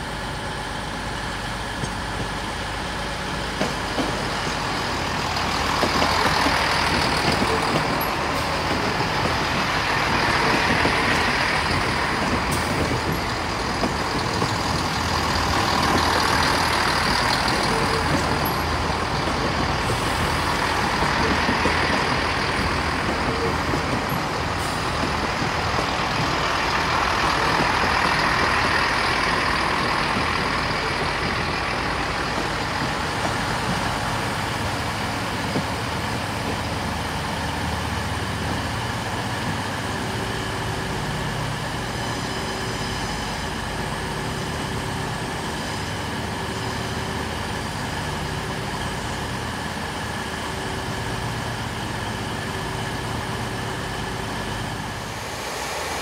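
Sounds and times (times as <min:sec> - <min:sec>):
diesel train engines working: 0:00.0 - 0:56.0
wheel and rail noise: 0:00.0 - 0:56.0.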